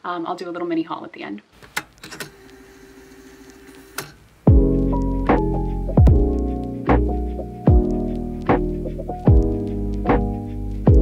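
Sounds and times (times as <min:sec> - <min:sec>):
low hum with faint hiss: 0:00.0 - 0:04.5
tape deck clicks: 0:01.6 - 0:04.2.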